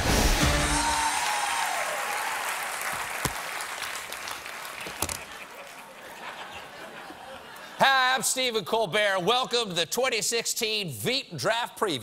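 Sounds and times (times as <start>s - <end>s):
studio audience applauding: 0.6s - 6.2s.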